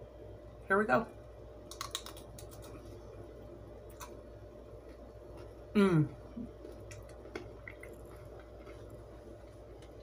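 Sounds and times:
steady low hum: 0:00.0 - 0:10.0
person chewing crunchy food: 0:01.7 - 0:03.0, 0:03.9 - 0:10.0.

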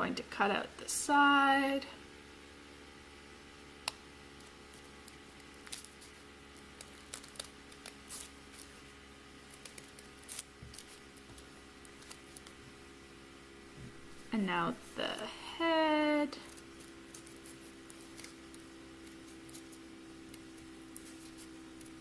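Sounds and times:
faint steady hum: 0:00.0 - 0:22.0
scissors snipping paper: 0:04.4 - 0:08.8, 0:09.5 - 0:12.5.

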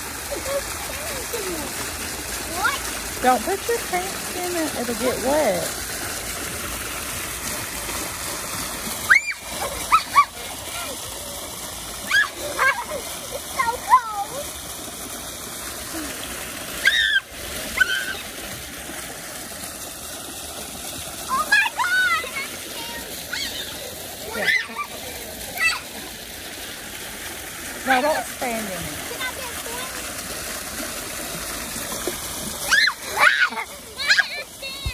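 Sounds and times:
fountain jets splashing: 0:00.0 - 0:34.9.

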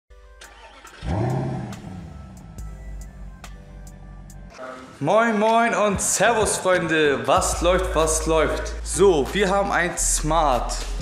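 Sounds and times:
car engine revving: 0:00.5 - 0:04.5.

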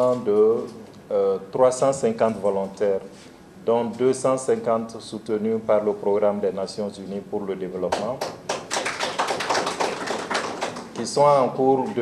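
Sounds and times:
person speaking: 0:00.0 - 0:08.3, 0:10.8 - 0:12.0.

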